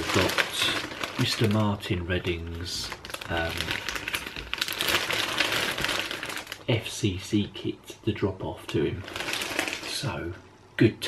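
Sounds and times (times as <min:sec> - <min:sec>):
plastic bag crinkling: 0:00.0 - 0:07.0, 0:09.0 - 0:10.1.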